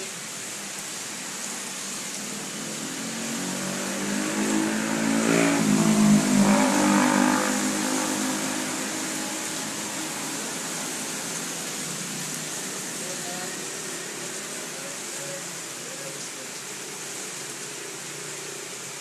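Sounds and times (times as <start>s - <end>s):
vehicle engine passing by: 2.8s - 10.2s.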